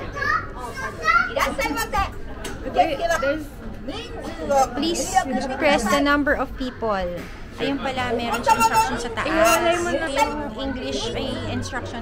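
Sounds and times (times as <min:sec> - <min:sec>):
children talking: 0:00.0 - 0:12.0.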